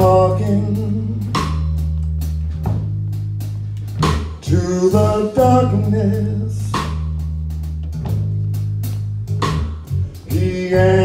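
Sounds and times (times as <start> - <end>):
drum kit strokes: 0.0 - 11.0
electric bass low notes: 0.0 - 11.0.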